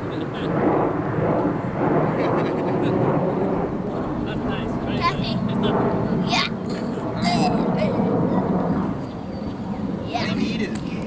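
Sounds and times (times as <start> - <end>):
aircraft drone overhead: 0.0 - 11.0.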